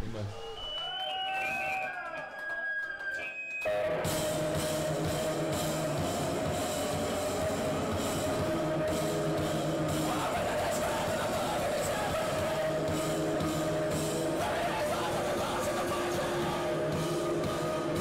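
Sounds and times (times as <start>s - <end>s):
noise punk band playing: 3.7s - 18.0s.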